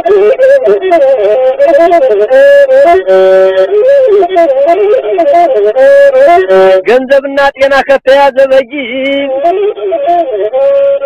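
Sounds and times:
bowed one-string fiddle melody: 0:00.0 - 0:11.0.

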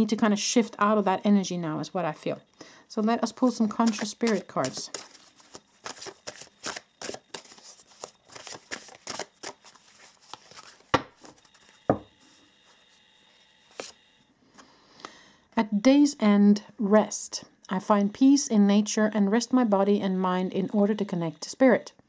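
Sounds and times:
cards being shuffled: 0:03.4 - 0:11.8, 0:13.7 - 0:14.0.

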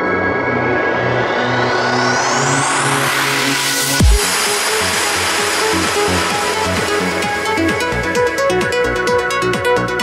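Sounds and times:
trance music: 0:00.0 - 0:10.0
wash of noise: 0:01.1 - 0:07.8
deep bass hit: 0:04.0 - 0:04.5.

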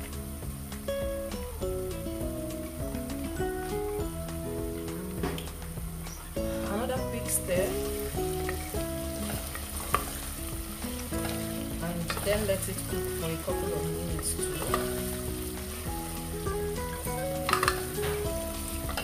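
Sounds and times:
background music: 0:00.0 - 0:19.0
onions sizzling in hot oil: 0:00.0 - 0:19.0
wooden spoon stirring: 0:05.3 - 0:19.0.

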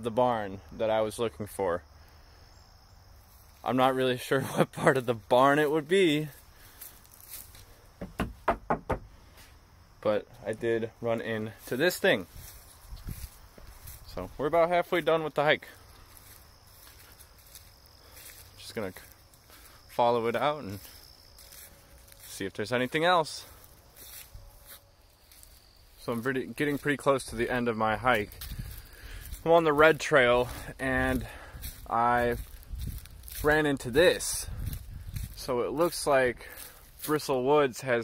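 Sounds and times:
faint insect chirp: 0:00.0 - 0:38.0
soft footsteps on grass: 0:01.2 - 0:38.0
knocks on wooden planks: 0:08.0 - 0:09.2.

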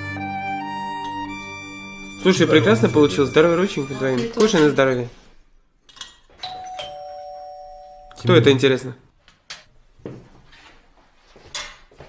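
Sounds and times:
two-note doorbell chime: 0:06.4 - 0:08.2.

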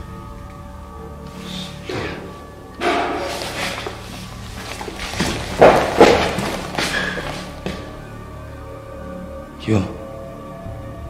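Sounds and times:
heavy bangs on a wall: 0:02.8 - 0:07.9.

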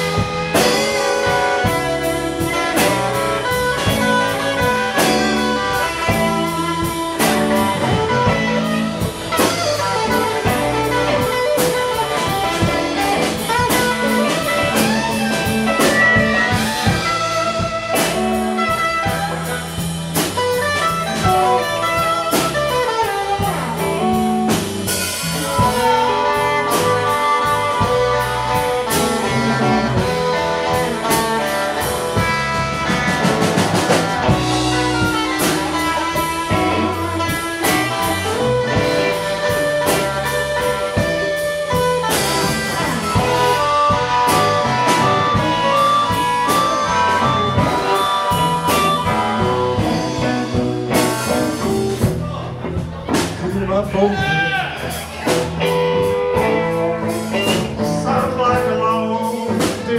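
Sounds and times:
blues harmonica: 0:00.0 - 0:52.3
drum kit: 0:00.0 - 0:59.9
electric bass: 0:00.0 - 0:59.9
electric guitars: 0:00.0 - 0:59.9.

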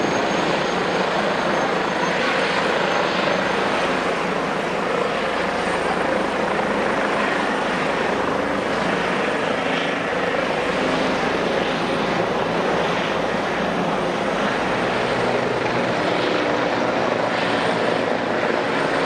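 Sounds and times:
helicopter rotor and turbine noise: 0:00.0 - 0:19.0.

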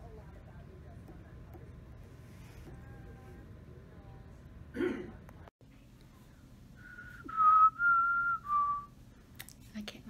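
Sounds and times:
woman whistling a tune: 0:06.9 - 0:08.9.

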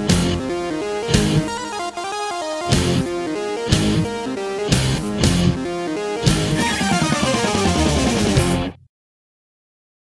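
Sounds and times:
instrumental rock music: 0:00.0 - 0:08.8.

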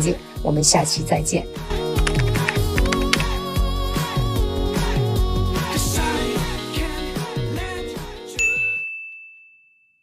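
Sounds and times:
background pop music: 0:00.0 - 0:08.8
high clear ding: 0:08.4 - 0:10.0.

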